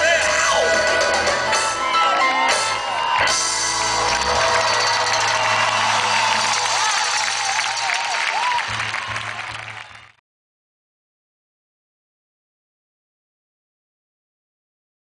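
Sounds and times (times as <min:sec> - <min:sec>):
live pop-rock band playing: 0:00.0 - 0:08.0
crowd noise: 0:00.0 - 0:10.2.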